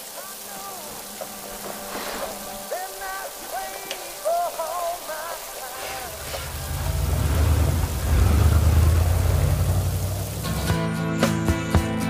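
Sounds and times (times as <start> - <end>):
thunder rumbling: 0.0 - 10.7
steady rain: 0.0 - 10.8.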